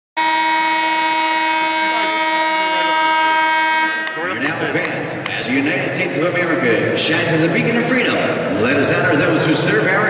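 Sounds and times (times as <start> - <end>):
loud steady horn blast: 0.2 - 4.6.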